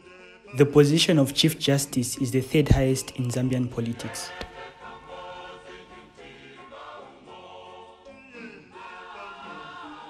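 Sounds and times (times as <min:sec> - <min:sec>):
choir singing held notes: 0:00.0 - 0:10.0.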